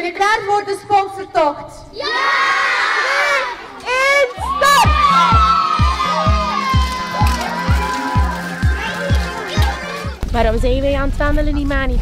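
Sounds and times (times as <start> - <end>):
children shouting and cheering: 1.9 - 10.2.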